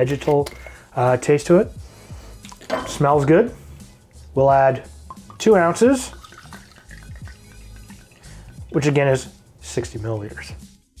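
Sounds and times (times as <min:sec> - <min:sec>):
background music: 0:00.0 - 0:11.0
liquid trickling into metal cup: 0:04.9 - 0:08.7.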